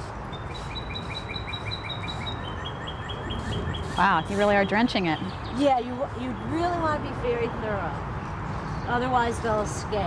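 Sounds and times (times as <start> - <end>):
songbird chirping: 0.0 - 10.0.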